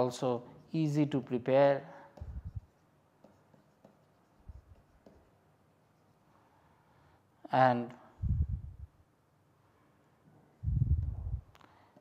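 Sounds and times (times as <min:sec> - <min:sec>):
stylus tapping on pen tablet: 0:02.1 - 0:05.3.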